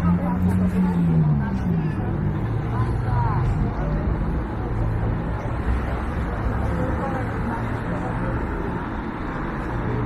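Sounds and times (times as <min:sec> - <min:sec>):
passers-by talking: 0:00.0 - 0:10.0
traffic hum: 0:00.0 - 0:10.0.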